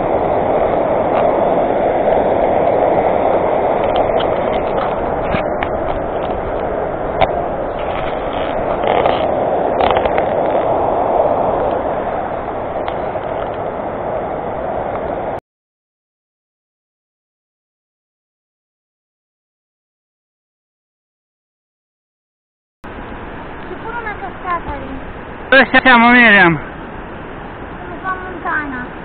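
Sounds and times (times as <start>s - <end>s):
stream rushing over rapids: 0.0s - 15.4s, 22.9s - 29.0s.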